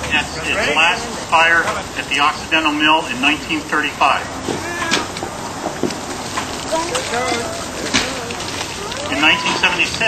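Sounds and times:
people talking: 0.0 - 5.1, 6.6 - 10.0
hissing crackling noise: 5.0 - 10.0.

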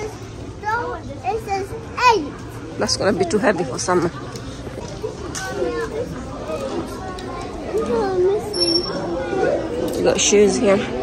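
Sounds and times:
child's voice: 0.0 - 2.4, 5.4 - 8.6
shop hubbub: 0.0 - 11.0.

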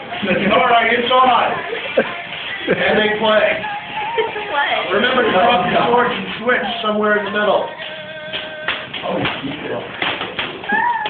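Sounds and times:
voices: 0.0 - 9.9.

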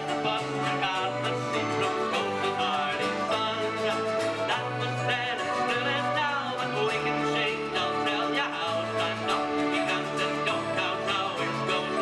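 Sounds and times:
accordion: 0.0 - 12.0
acoustic guitar: 0.0 - 12.0
keyboard: 0.0 - 12.0.

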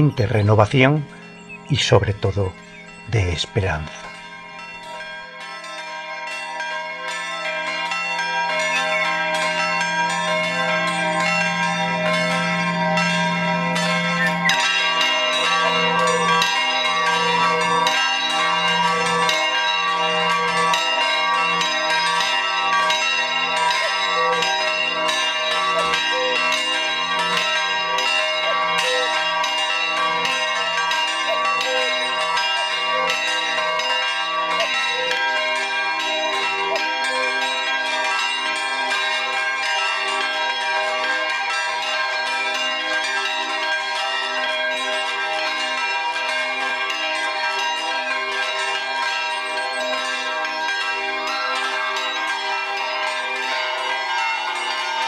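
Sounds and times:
church bells pealing: 0.0 - 55.0.

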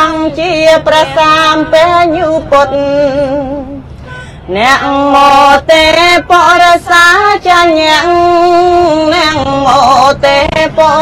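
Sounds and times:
woman chanting: 0.0 - 3.7.

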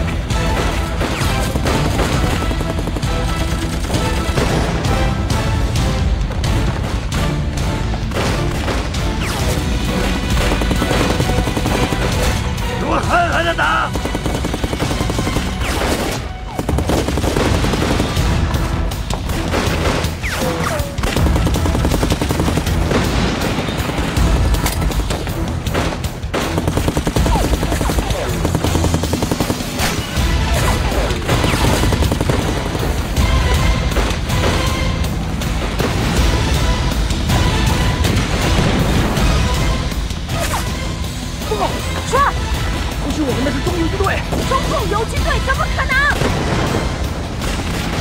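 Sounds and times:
dramatic background music: 0.0 - 48.0
rifle and machine-gun fire: 0.3 - 5.1, 8.1 - 12.6, 13.9 - 33.2.

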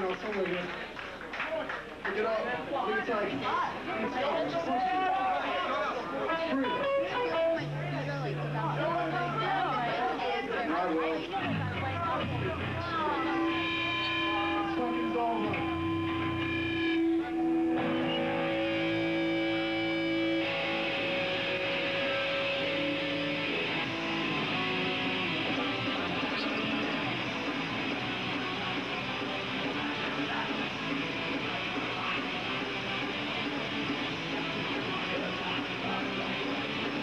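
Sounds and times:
crowd voices: 0.0 - 37.0
band playing distorted guitar: 6.3 - 9.9, 11.2 - 37.0
electric guitars holding notes: 6.5 - 9.7, 11.5 - 37.0.

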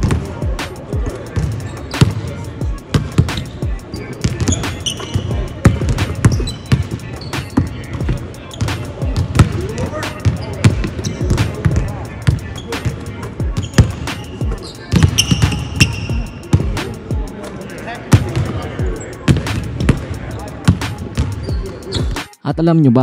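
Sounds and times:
basketballs bouncing on hardwood: 0.0 - 0.2, 4.2 - 16.8.

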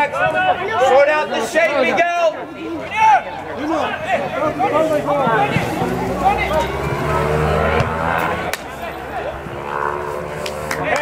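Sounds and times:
distant shouting from players: 0.0 - 11.0.

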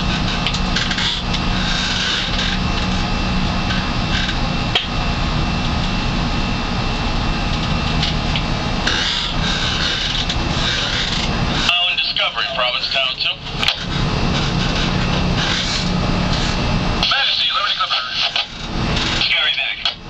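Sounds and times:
boat engine drone: 0.0 - 20.0
person speaking: 17.0 - 18.3.

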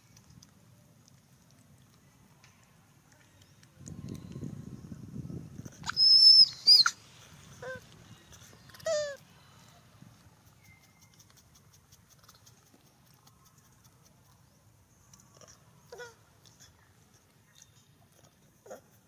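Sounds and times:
young monkey squealing: 5.8 - 7.0, 8.8 - 9.2.

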